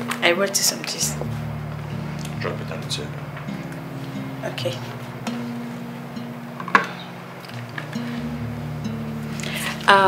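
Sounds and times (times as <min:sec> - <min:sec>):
soft guitar film music: 0:00.0 - 0:10.0.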